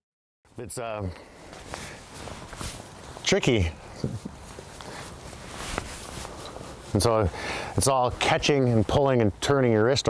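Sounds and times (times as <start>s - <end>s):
soft footsteps on grass: 0.6s - 9.2s.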